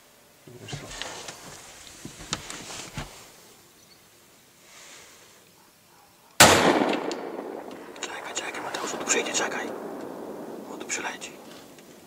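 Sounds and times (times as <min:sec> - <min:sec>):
faint rustles and clicks: 0:00.5 - 0:03.6
gunshot: 0:06.4 - 0:07.9.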